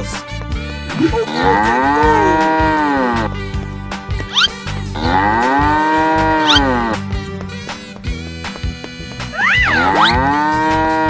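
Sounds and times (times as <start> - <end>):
children's music: 0.0 - 11.0
cow moo sound effect: 1.0 - 3.3, 4.3 - 7.0, 9.4 - 11.0.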